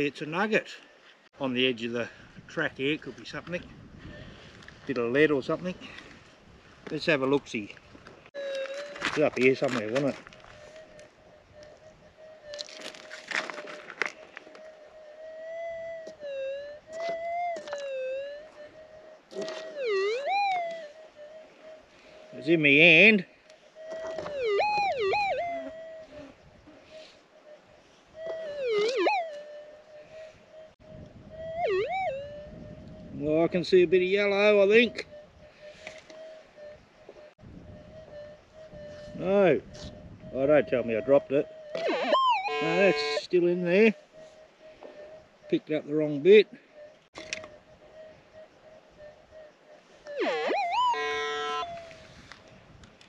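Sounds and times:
pick scraping stony ground: 0:08.3 - 0:10.7, 0:12.5 - 0:14.2
metal detector hum: 0:08.4 - 0:21.4, 0:22.1 - 0:26.3, 0:28.2 - 0:33.3, 0:33.9 - 0:43.8.

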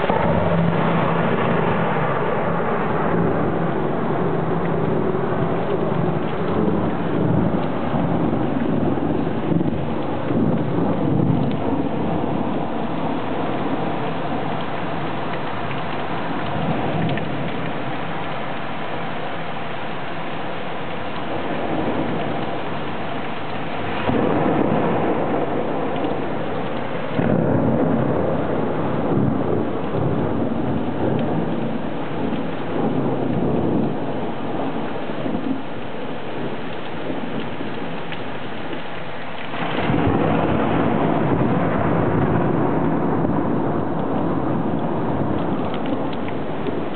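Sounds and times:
heavy rain pouring: 0:00.0 - 0:46.9
thunder rumbling: 0:00.0 - 0:46.9.

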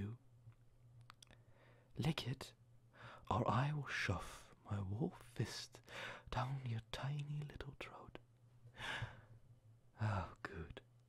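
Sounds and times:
faint low hum: 0:00.0 - 0:11.0
breaths: 0:01.3 - 0:02.0, 0:02.9 - 0:03.3, 0:05.8 - 0:06.3, 0:08.7 - 0:09.4
man whispering and murmuring: 0:02.0 - 0:02.6, 0:03.2 - 0:08.2, 0:09.9 - 0:10.9.

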